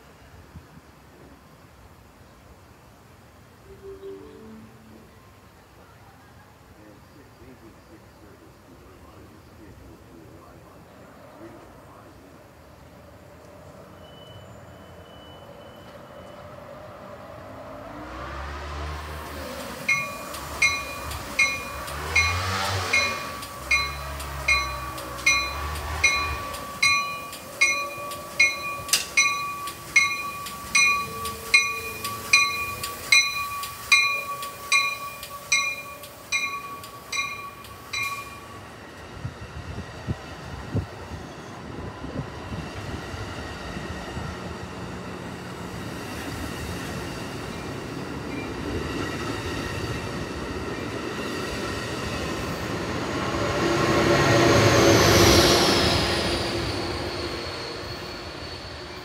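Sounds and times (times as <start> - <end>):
diesel locomotive passing: 2.6 - 59.0
train cars rolling past: 6.6 - 59.0
train bell dinging: 19.3 - 38.8.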